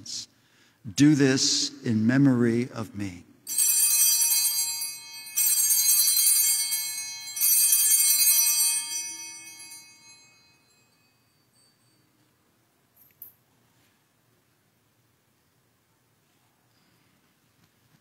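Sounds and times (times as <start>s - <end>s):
altar bells ringing: 3.5s - 12.5s.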